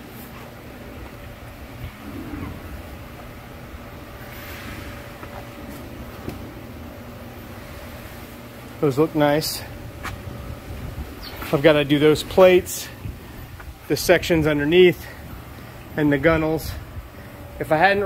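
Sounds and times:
low mechanical hum: 0.0s - 18.0s.

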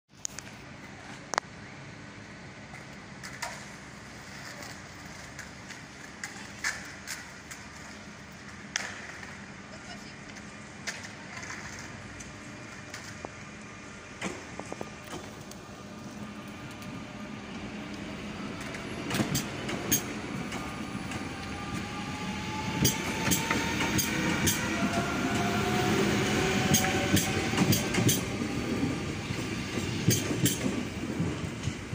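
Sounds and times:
electric train approaching: 11.9s - 31.9s.

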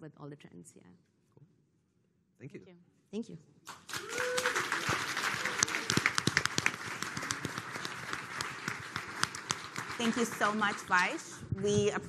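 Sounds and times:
audience applauding: 3.7s - 11.4s.

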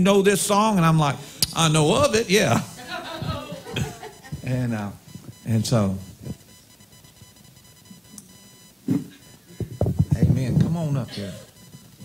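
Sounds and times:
microphone handling knocks: 8.9s - 10.8s.

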